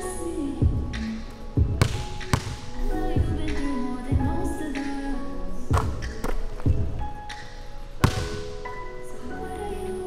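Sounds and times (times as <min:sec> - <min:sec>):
music playing: 0:00.0 - 0:10.0
basketball bouncing on wooden floor: 0:01.6 - 0:02.6, 0:08.0 - 0:08.4.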